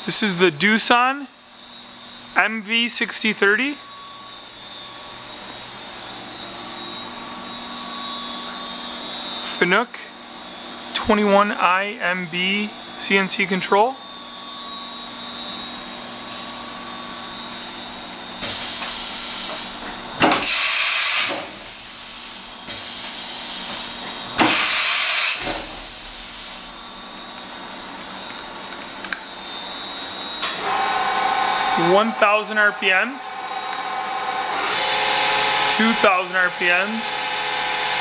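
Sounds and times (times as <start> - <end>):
machine humming with high whine: 0.0 - 38.0
compressed air hiss: 18.4 - 19.8, 20.4 - 26.8.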